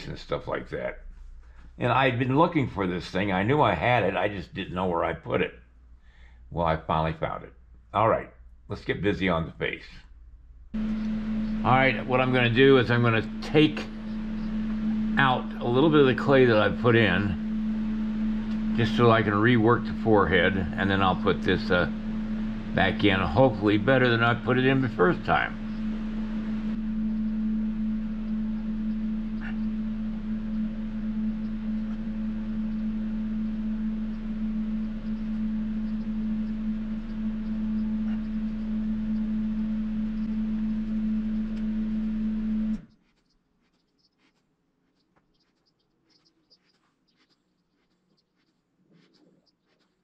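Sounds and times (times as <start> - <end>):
steady low hum: 0.0 - 43.0
hands working modelling clay: 26.6 - 50.0.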